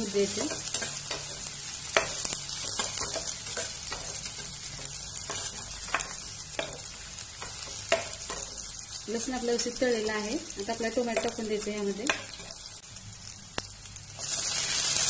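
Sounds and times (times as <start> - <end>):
garlic sizzling in oil: 0.0 - 15.0.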